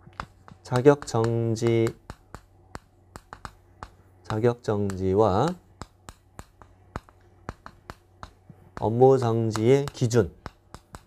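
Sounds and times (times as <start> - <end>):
chalk clicking on blackboard: 0.0 - 11.0.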